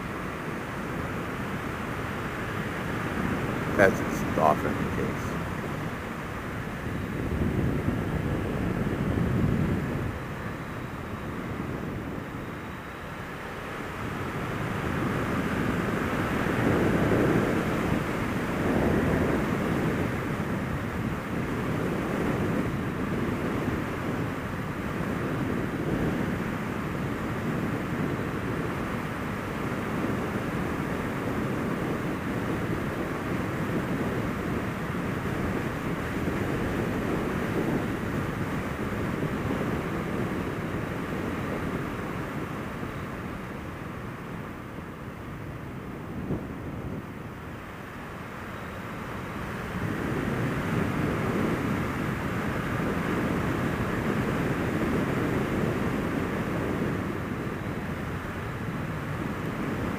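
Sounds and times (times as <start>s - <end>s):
wind rush on microphone: 0.0s - 59.9s.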